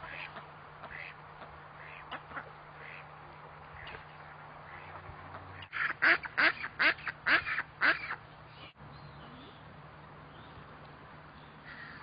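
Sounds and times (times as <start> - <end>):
duck calling: 0.0 - 3.1, 4.7 - 8.2.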